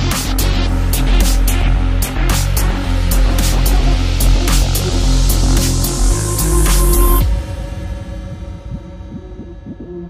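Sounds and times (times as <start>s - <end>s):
repeated synth bass notes: 0.0s - 10.0s
held low tone: 6.0s - 10.0s.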